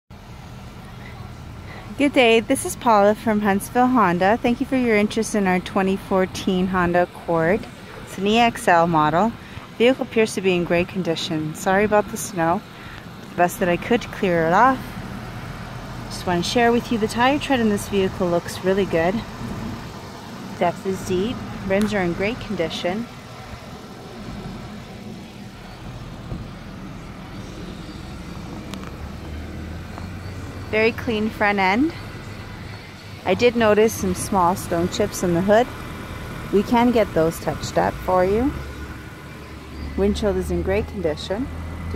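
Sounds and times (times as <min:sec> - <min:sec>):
car engine idling: 0:00.1 - 0:41.9
low outdoor rumble: 0:00.1 - 0:41.9.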